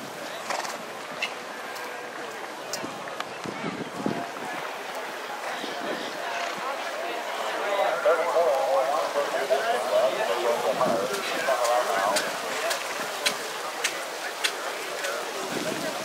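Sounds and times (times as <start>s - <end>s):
indistinct background voices: 1.6s - 16.0s.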